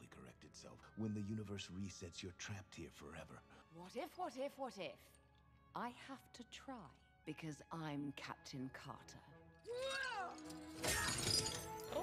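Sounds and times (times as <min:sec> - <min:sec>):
debris crashing and shattering: 0:09.8 - 0:12.0.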